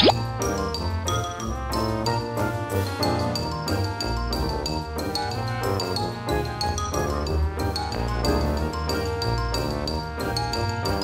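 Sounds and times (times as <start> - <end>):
cartoon pop blip: 0.0 - 0.2
upbeat background music: 0.0 - 11.0.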